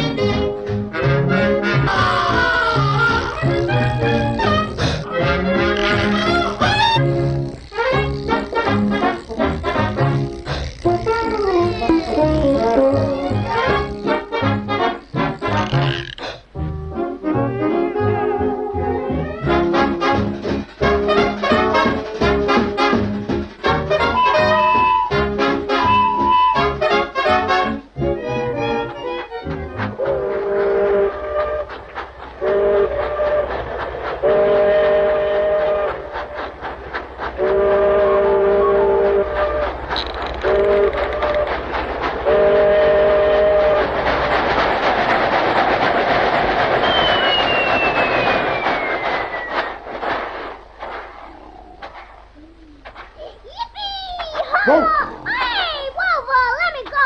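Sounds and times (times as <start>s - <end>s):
brass-led cartoon music: 0.0s - 31.8s
steam-train whistle blasts: 23.9s - 27.5s, 30.0s - 31.8s, 32.4s - 33.6s, 34.2s - 36.4s, 37.4s - 39.8s, 40.4s - 41.6s, 42.2s - 43.9s
falling whistle: 46.8s - 49.8s.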